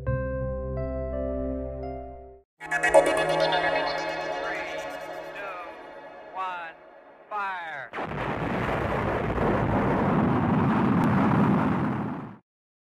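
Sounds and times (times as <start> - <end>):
falling pitched sweep: 2.6 - 7.5
rocket launch rumble: 8.0 - 12.4.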